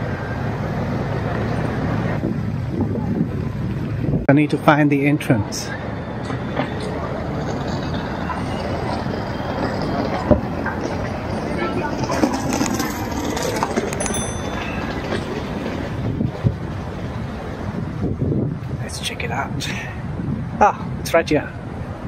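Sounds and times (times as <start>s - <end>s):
passing cars: 0.0s - 22.0s.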